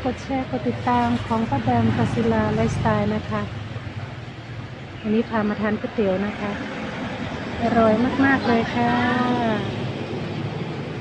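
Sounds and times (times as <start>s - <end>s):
background noise with low hum: 0.0s - 11.0s.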